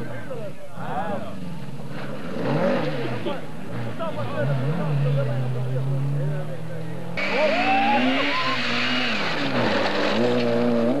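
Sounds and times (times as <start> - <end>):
rally car engine at high revs: 1.3 - 11.0
tyre and gravel noise: 8.6 - 11.0.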